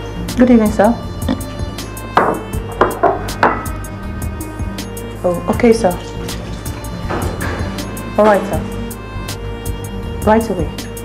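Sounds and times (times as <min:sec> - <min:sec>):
ringing percussive hits: 0:06.6 - 0:09.0.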